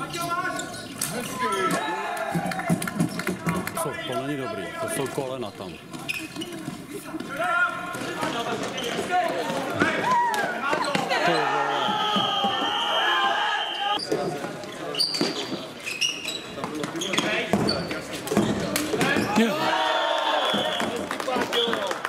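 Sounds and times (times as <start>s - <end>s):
players calling out: 0.0s - 14.0s, 18.5s - 21.9s
clatter of sticks and ball: 0.9s - 3.9s, 14.2s - 19.3s.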